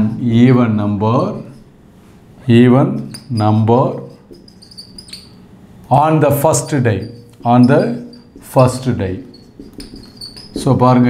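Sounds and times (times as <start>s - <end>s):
whiteboard marker squeaking: 1.1s - 1.8s, 2.6s - 11.0s.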